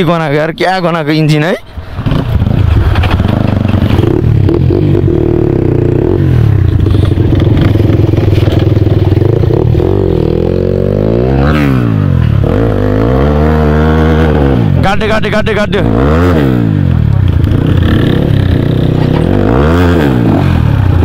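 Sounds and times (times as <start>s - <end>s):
dirt bike engine revving: 1.9s - 21.0s.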